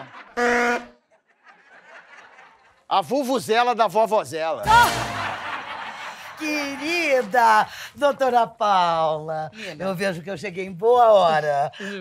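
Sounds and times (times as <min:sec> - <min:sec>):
vuvuzela blast: 0:00.4 - 0:01.0, 0:04.6 - 0:05.6.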